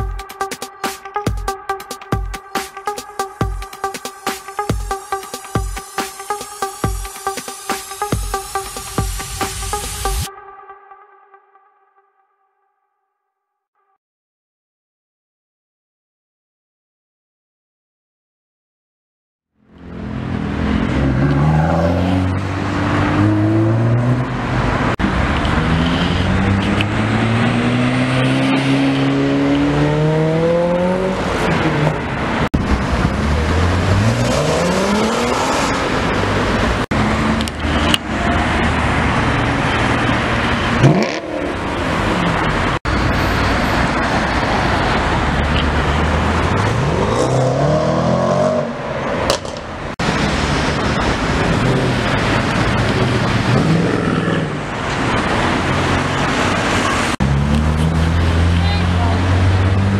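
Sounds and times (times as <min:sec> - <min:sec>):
sports cars accelerating: 0:19.7 - 0:59.9.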